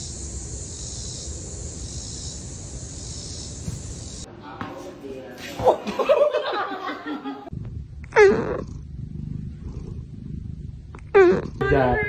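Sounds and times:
low steady rumble: 0:07.5 - 0:12.0.

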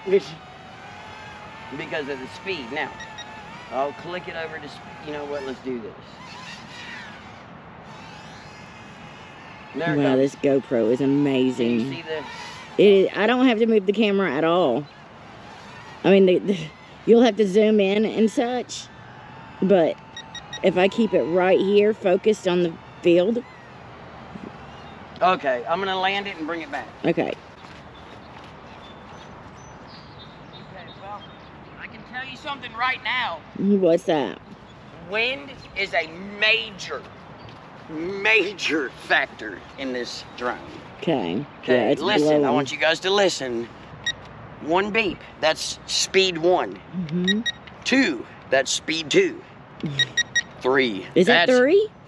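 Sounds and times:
faint voices: 0:00.0 - 0:23.4
light wind: 0:00.0 - 0:52.0.

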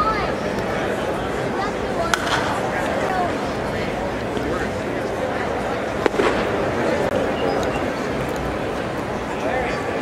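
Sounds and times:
crowd chatter: 0:00.0 - 0:10.0
bat cracking ball: 0:02.1 - 0:02.7, 0:06.0 - 0:07.2.

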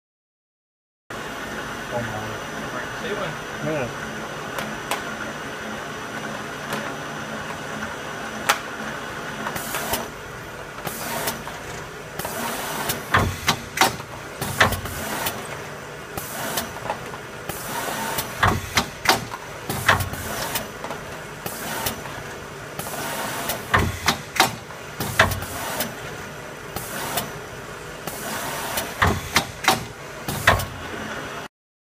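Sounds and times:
sharp mechanical clacks: 0:10.8 - 0:15.6, 0:16.2 - 0:22.1, 0:22.8 - 0:26.0, 0:28.1 - 0:30.8.

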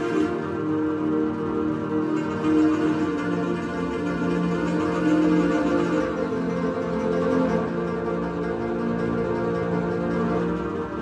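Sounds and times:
keyboard string chords: 0:00.0 - 0:11.0.

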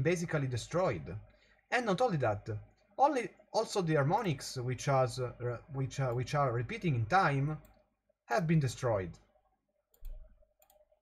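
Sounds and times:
computer mouse clicks: 0:09.9 - 0:11.0.

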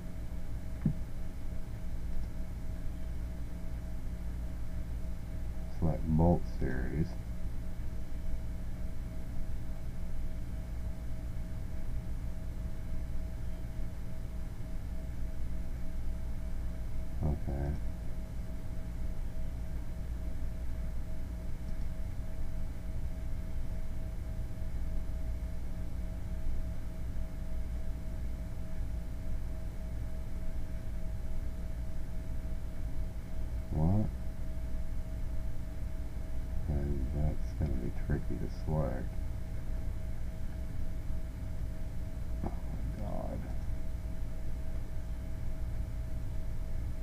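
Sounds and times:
faint constant tone: 0:00.0 - 0:47.0
low electrical hum: 0:00.0 - 0:47.0
man's voice murmuring: 0:33.8 - 0:34.1.

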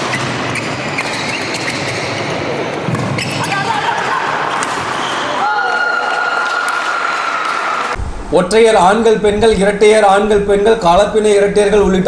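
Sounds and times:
reverberant voices: 0:00.0 - 0:12.0.

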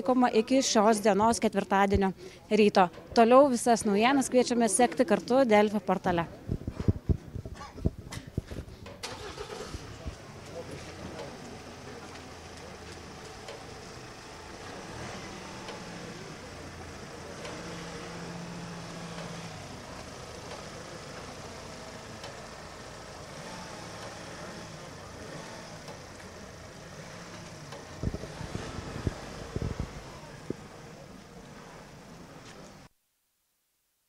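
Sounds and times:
van engine idling: 0:07.8 - 0:32.9.

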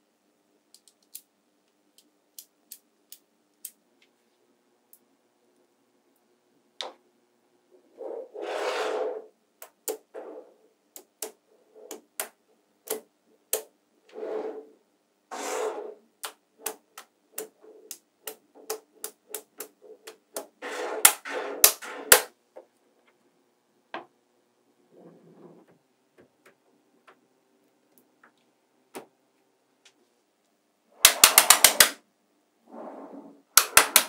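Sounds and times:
magnetic balls rattling and scraping: 0:07.8 - 0:13.0, 0:14.1 - 0:22.3
magnetic balls clicking together: 0:10.9 - 0:13.7, 0:16.2 - 0:22.3, 0:31.0 - 0:32.0, 0:33.6 - 0:34.0.

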